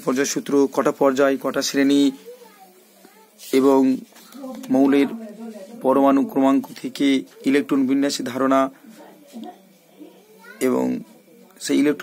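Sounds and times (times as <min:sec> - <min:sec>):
man speaking: 0:00.0 - 0:02.3, 0:05.8 - 0:08.8, 0:11.6 - 0:12.0.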